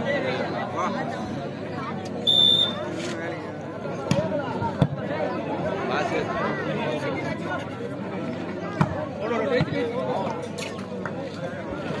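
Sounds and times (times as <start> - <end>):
crowd chatter: 0.0 - 12.0
referee's whistle blast: 2.2 - 2.8.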